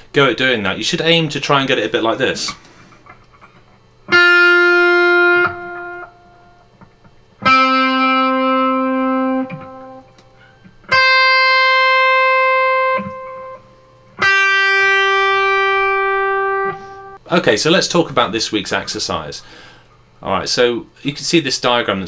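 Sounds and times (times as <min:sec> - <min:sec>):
electric guitar bent notes: 0:04.1 - 0:06.6, 0:07.4 - 0:17.2.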